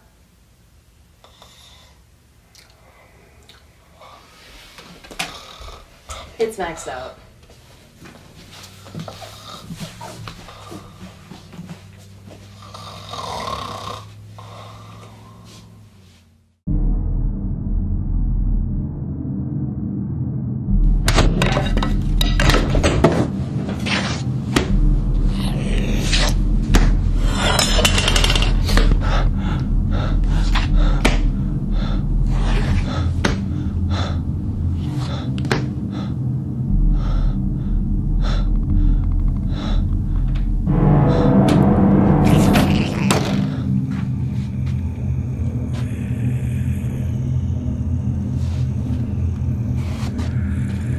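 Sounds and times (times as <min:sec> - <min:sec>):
steady low hum: 0:00.0 - 0:50.9
man breathing heavily in sleep: 0:01.2 - 0:02.2, 0:02.8 - 0:06.4, 0:08.5 - 0:16.0, 0:28.6 - 0:41.3, 0:43.4 - 0:50.9
man snoring: 0:05.2 - 0:05.9, 0:12.6 - 0:15.5, 0:44.7 - 0:48.3
low steady drone: 0:14.0 - 0:50.9.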